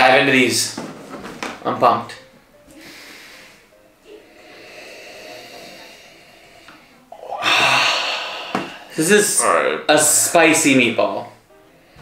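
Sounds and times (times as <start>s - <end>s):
forceful breath out: 2.7s - 9.0s.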